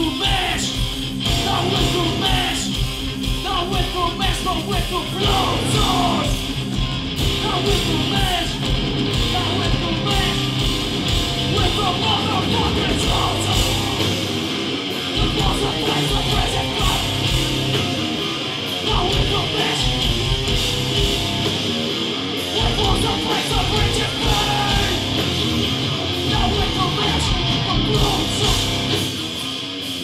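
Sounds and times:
punk band playing live: 0.0 - 30.0.

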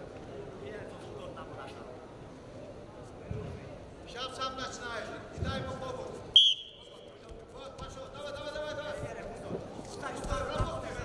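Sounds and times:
referee's whistle blast: 6.4 - 6.9.

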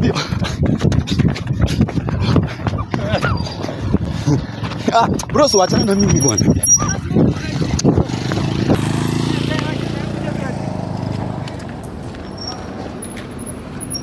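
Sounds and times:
motorcycle engine running: 7.3 - 11.9.

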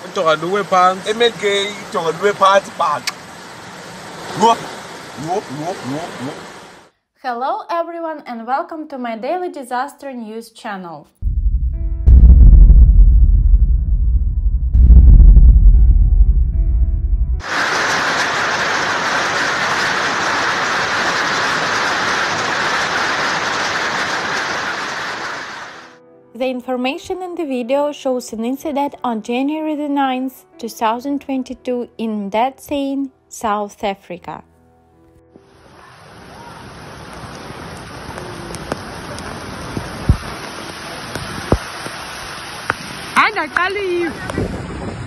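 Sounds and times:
hail and heavy rain: 0.0 - 6.8, 17.4 - 26.0, 35.6 - 44.6
sharp low thump: 11.2 - 17.4.

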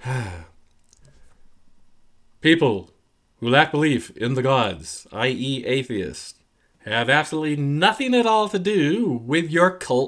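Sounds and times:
man sighing: 0.0 - 0.7.

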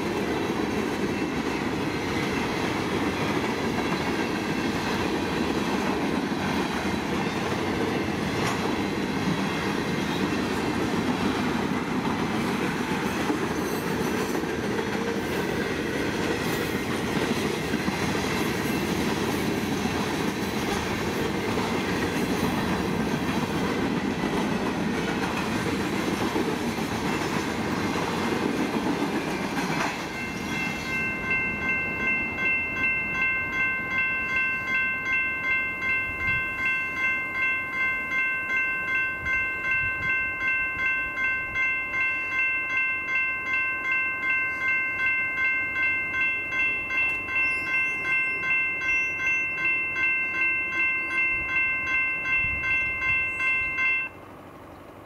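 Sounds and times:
crossing bells ringing: 0.0 - 54.3
train rumbling past: 0.0 - 55.0.

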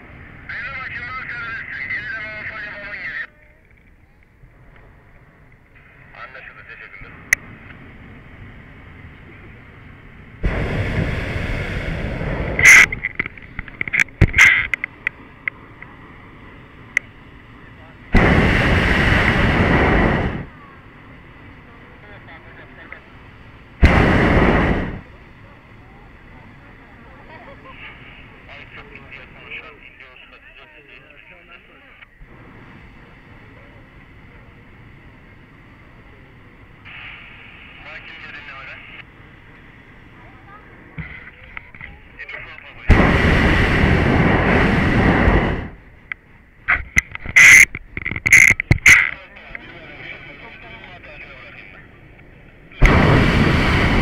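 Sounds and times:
propane burner blasts: 0.0 - 3.2, 4.3 - 54.0.

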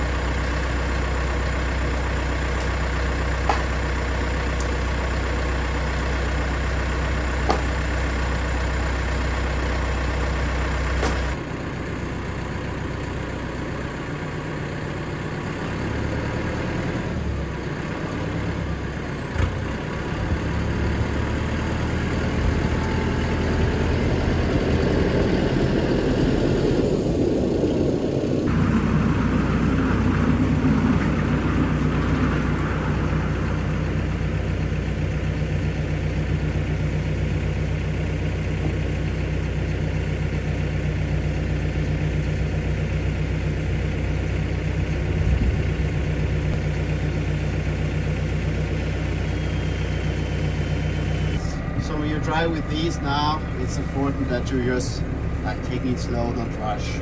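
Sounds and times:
tractor diesel engine running: 0.0 - 57.0.

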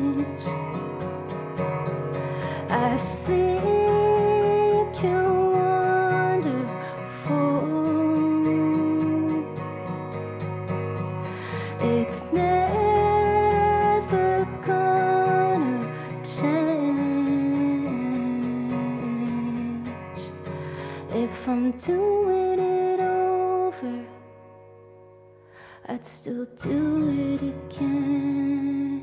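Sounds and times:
acoustic guitar: 0.0 - 29.0.

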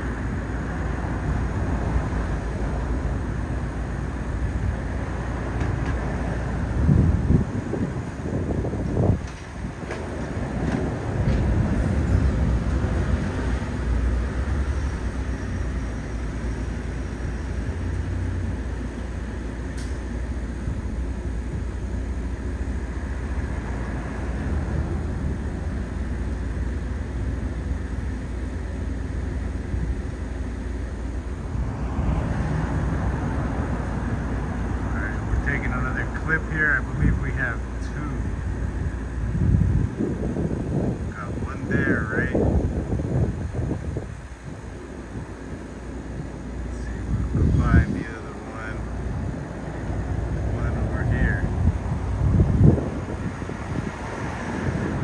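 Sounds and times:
distant traffic rumble: 0.0 - 55.0.

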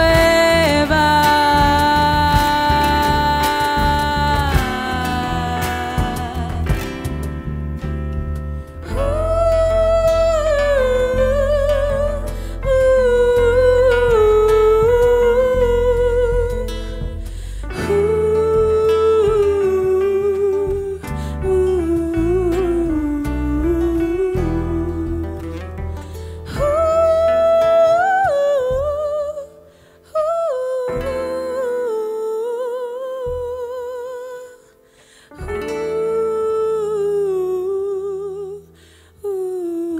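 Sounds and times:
soft band accompaniment: 0.0 - 38.6
acoustic guitar: 0.0 - 39.9
bass: 0.0 - 39.9.

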